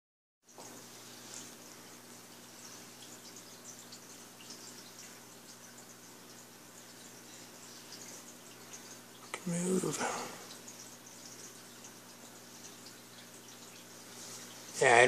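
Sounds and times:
crackle of moving water: 0.5 - 14.8
aquarium equipment hum: 0.5 - 15.0.

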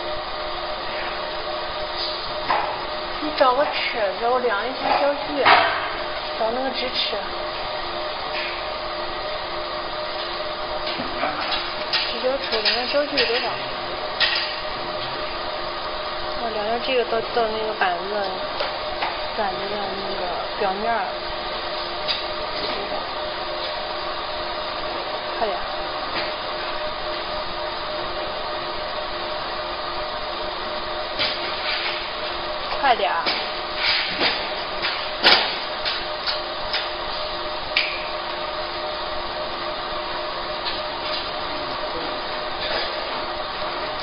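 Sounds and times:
laser machine whirring hum: 0.0 - 44.0.

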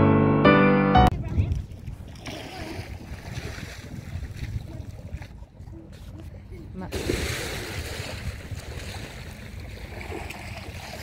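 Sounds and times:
wind buffeting microphone: 1.1 - 11.0.

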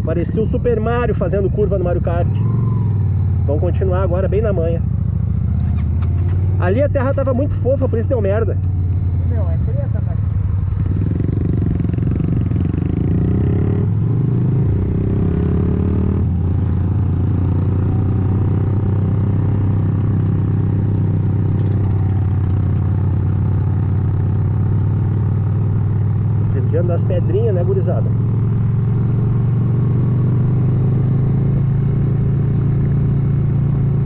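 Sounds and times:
motorcycle engine running: 0.0 - 34.0.

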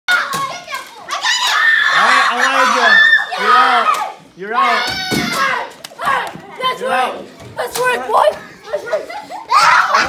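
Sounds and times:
children shouting while playing: 0.1 - 7.0, 8.2 - 10.0.

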